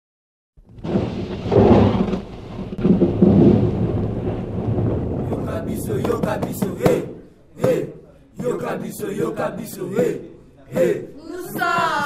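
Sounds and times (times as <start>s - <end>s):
thunder rumbling: 0.6s - 7.3s
steady rain: 0.7s - 6.6s.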